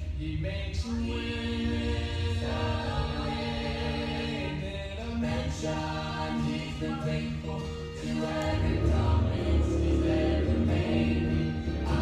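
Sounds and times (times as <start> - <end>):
accompaniment with strong bass: 0.0 - 12.0
choir singing gospel song: 0.0 - 12.0.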